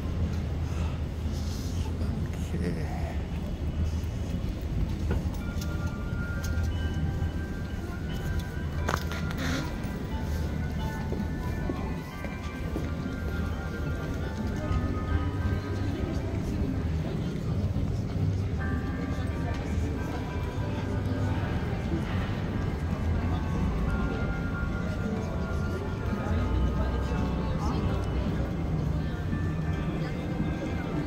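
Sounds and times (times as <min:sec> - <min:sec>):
busy city street hubbub: 0:00.0 - 0:31.0
bells ringing a carol tune: 0:04.4 - 0:31.0.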